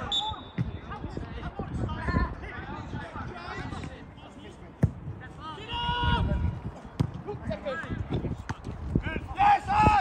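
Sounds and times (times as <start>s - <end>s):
players shouting: 5.3s - 6.6s, 9.0s - 10.0s.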